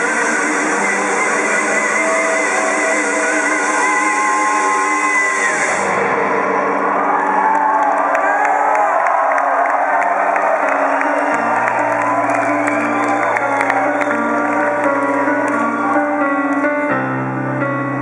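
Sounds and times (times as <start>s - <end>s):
crowd cheering and whooping: 0.0s - 17.6s.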